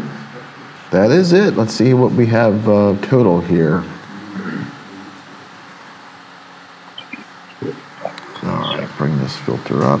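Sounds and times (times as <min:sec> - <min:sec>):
steady low hum: 0:00.0 - 0:10.0
muffled voice: 0:07.0 - 0:10.0.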